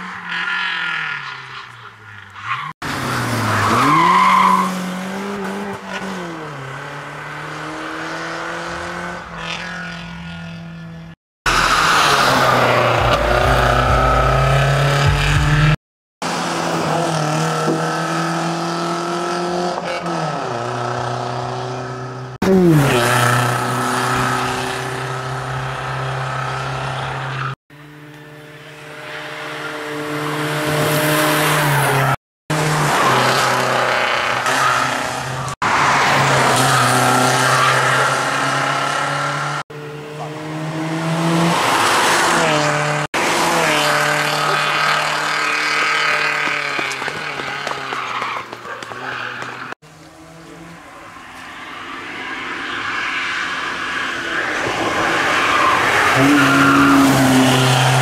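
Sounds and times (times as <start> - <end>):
tyre and road noise: 0.0 - 58.0
rally car engine revving: 11.5 - 51.2, 54.4 - 58.0.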